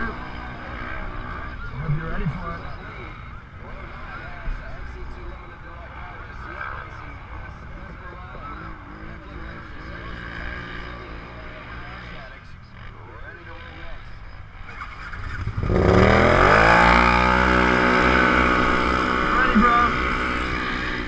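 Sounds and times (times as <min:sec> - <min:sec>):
engines idling: 0:00.0 - 0:21.0
engine revving at full throttle: 0:14.6 - 0:21.0.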